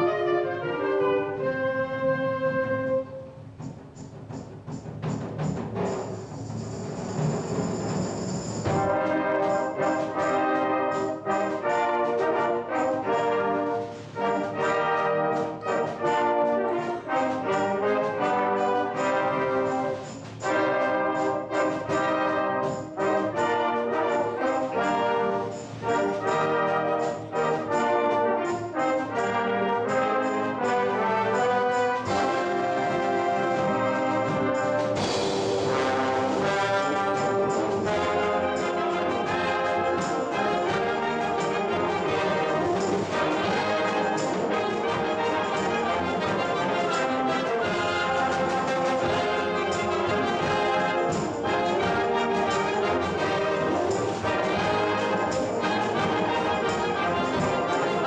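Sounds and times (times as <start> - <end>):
concert band playing: 6.9 - 58.0.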